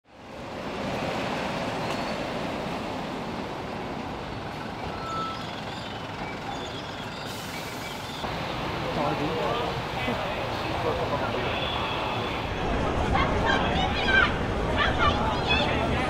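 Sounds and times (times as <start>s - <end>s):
faint street noise: 0.1s - 16.0s.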